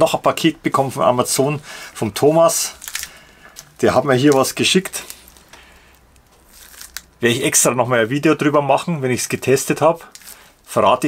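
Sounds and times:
faint rustling handling noise: 0.3 - 11.0.

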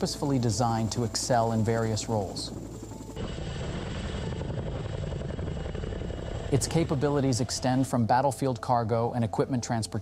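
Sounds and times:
helicopter hovering: 0.0 - 10.0.

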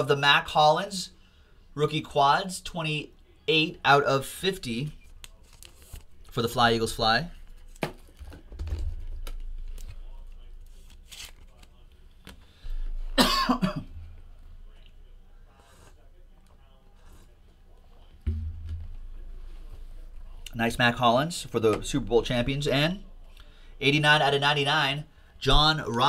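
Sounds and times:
trading cards and packaging rustling: 5.0 - 12.5
man coughing: 13.1 - 14.1.

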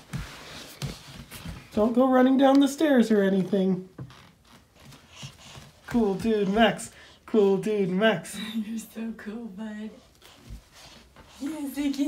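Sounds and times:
footsteps on a floor: 0.0 - 2.0, 3.4 - 7.1, 10.0 - 12.0.

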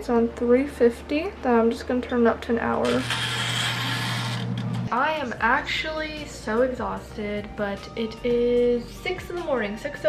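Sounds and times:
timer dial ratcheting whir: 2.8 - 4.9.

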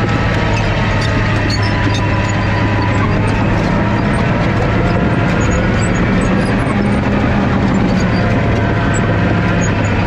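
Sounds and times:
diesel engine running under load: 0.0 - 10.0
steel tracks clattering and squeaking: 0.0 - 10.0.

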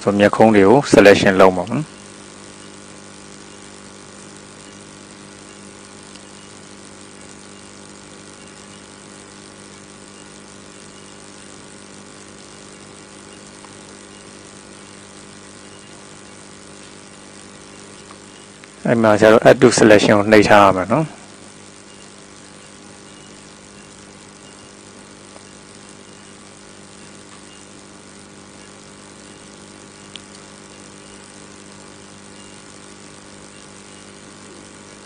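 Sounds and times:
electrical hum: 0.0 - 35.0
faint hiss: 0.0 - 35.0.

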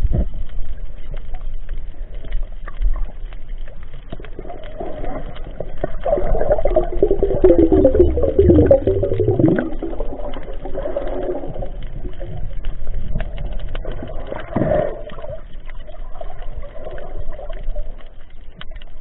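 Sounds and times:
underwater clicks: 0.0 - 19.0.

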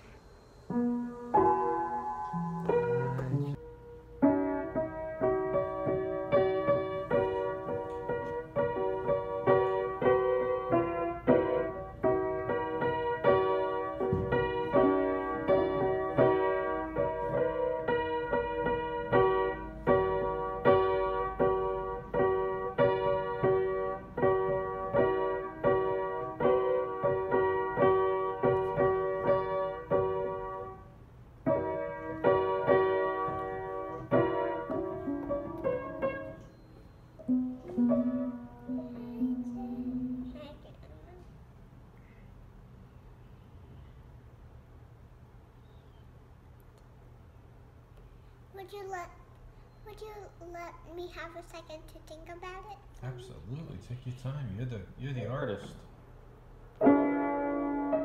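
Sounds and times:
child playing upright piano: 0.0 - 41.9, 55.3 - 58.0.

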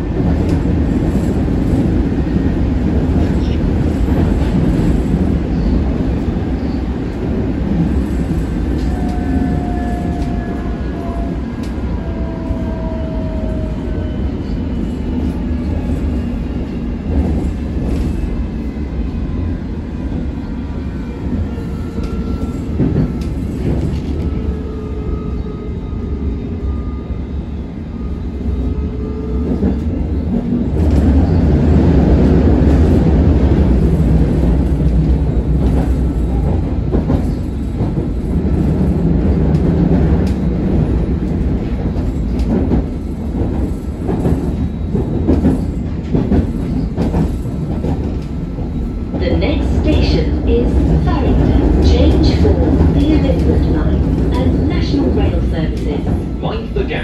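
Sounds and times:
train rumble in tunnel: 0.0 - 57.0.

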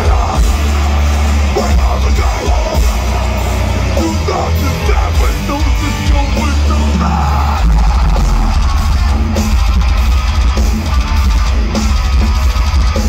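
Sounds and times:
person singing: 0.0 - 9.0
heavy distorted guitars: 0.0 - 13.0
pounding drums: 0.0 - 13.0.

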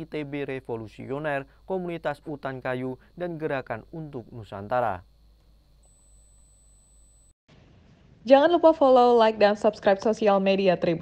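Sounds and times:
faint low hum: 0.0 - 7.3.

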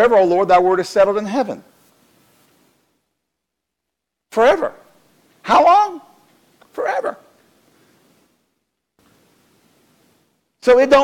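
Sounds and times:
voice echo: 4.3 - 8.1
man shouting a drawn-out word: 5.4 - 7.3.

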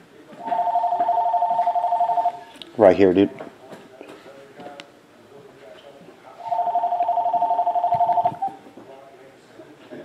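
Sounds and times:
electronic two-tone ringing: 0.4 - 2.4, 6.5 - 8.6.

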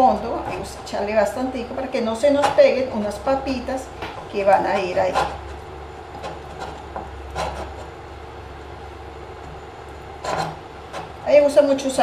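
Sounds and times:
steady low hum: 0.0 - 12.0
fingers rubbing on glass: 4.4 - 8.0.

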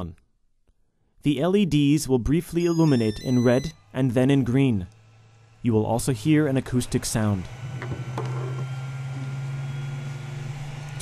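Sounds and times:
respirator blower humming: 2.8 - 11.0.

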